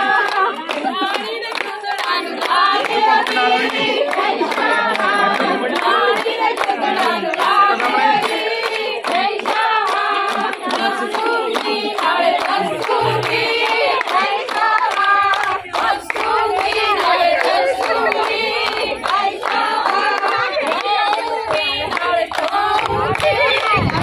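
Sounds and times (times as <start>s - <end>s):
rhythmic hand-clapping: 0.0s - 24.0s
women singing folk songs: 0.0s - 24.0s.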